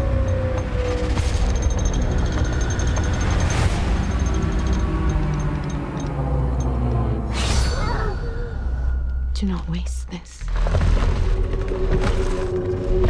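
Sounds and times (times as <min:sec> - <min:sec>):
deep rumbling drone: 0:00.0 - 0:13.0.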